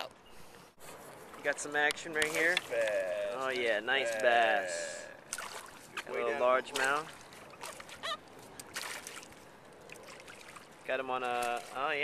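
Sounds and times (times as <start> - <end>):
fish splashing at surface: 5.3 - 6.0.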